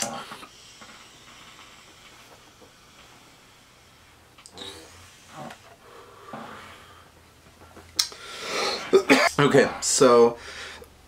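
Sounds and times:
vape inhale hiss: 0.0s - 7.1s
breathy exhales: 0.0s - 7.2s, 8.1s - 9.0s.

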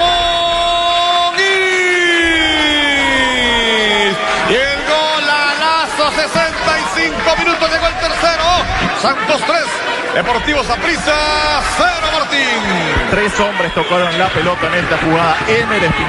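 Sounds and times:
commentator shouting: 0.0s - 16.0s
crowd noise: 0.0s - 16.0s.

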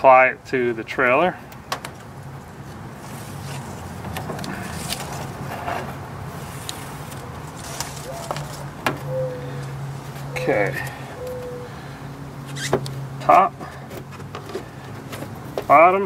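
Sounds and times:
steady low hum: 6.0s - 15.1s
paper backing peeling: 6.5s - 8.8s.

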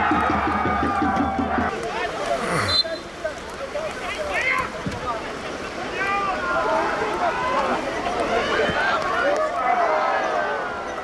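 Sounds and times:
stadium crowd ambience: 0.0s - 11.0s
voices shouting and calling out: 0.0s - 11.0s.

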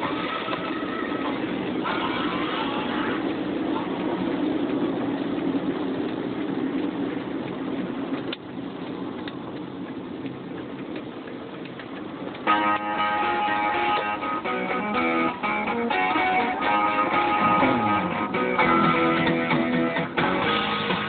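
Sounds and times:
car engine and road noise: 0.0s - 21.0s.

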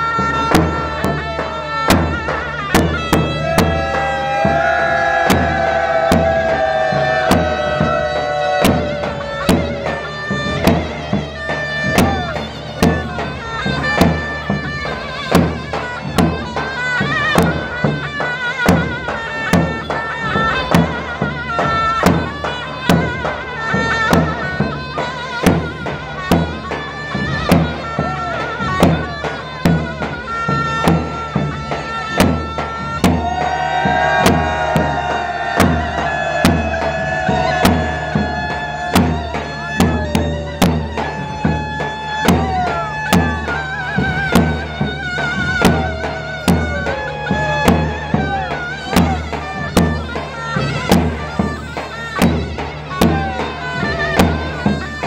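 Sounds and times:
drum beats: 0.0s - 55.0s
shawm playing folk dance tune: 0.0s - 55.0s.

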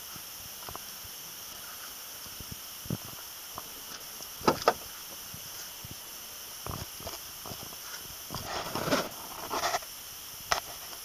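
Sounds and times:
rustling and scraping: 6.6s - 9.9s.

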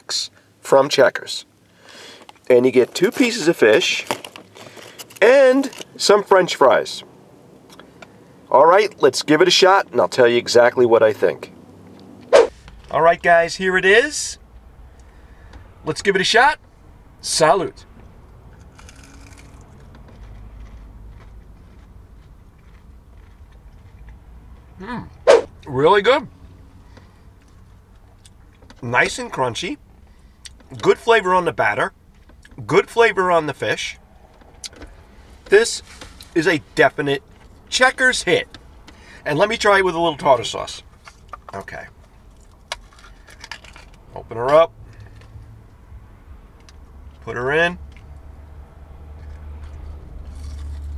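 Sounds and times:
low steady rumble: 0.0s - 50.9s
chewing crunchy fried fish: 18.5s - 24.8s, 40.9s - 44.0s, 49.1s - 50.9s.

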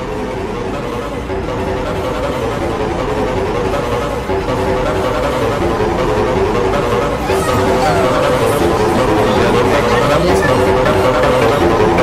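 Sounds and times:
music: 0.0s - 12.0s
overlapping voices: 7.1s - 12.0s.

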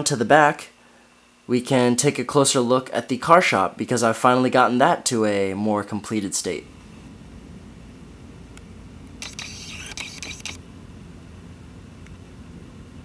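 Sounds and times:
low room hum: 0.0s - 13.0s
brief rustle: 9.2s - 10.6s.

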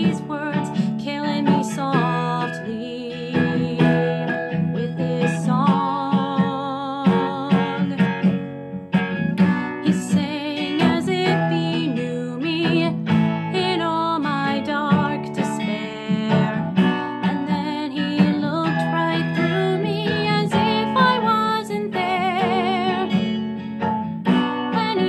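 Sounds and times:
woman singing: 0.0s - 8.4s, 9.4s - 23.4s, 24.3s - 25.0s
plucked violin chords: 0.0s - 25.0s.

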